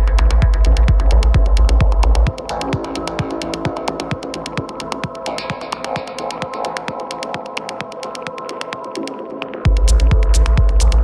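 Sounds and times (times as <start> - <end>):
kick drum and bass thumping: 0.0 - 9.0, 9.6 - 11.0
hi-hat ticks: 0.0 - 11.0.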